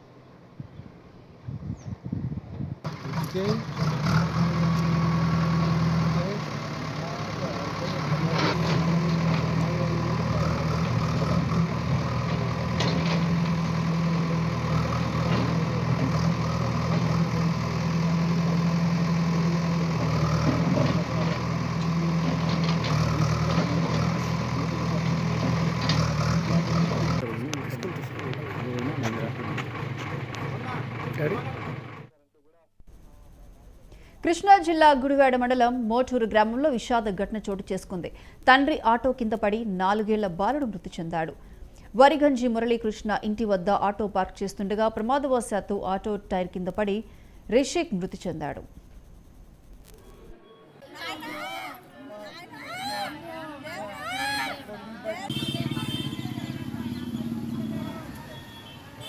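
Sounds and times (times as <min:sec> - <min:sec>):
diesel engine running: 0:02.8 - 0:32.2, 0:32.9 - 0:50.4, 0:51.1 - 0:59.0.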